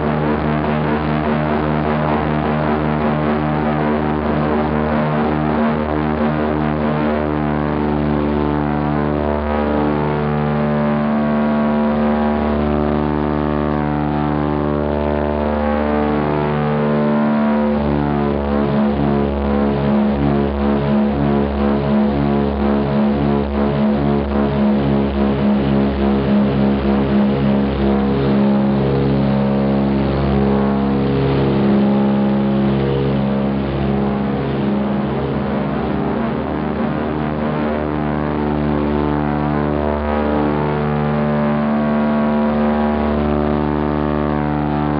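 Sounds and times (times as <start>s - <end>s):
piston aircraft engines droning: 0.0s - 44.9s.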